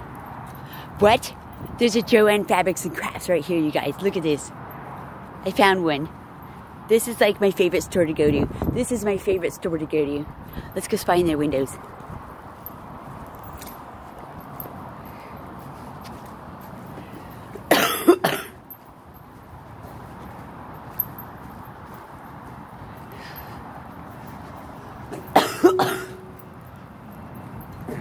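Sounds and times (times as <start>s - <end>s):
woman coughing: 17.7s - 18.6s, 25.3s - 26.3s.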